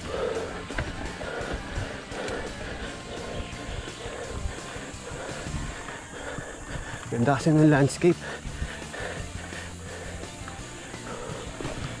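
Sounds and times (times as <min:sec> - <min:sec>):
faint background music with beat: 0:00.0 - 0:06.1, 0:07.3 - 0:12.0
tyres on dirt trail: 0:00.0 - 0:12.0
wind on microphone: 0:02.6 - 0:07.1.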